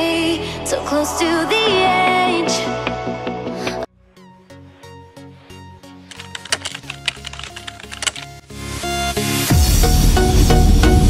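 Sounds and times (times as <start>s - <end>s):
electronic background music: 1.3s - 11.0s
keyboard key clicks: 6.1s - 8.4s.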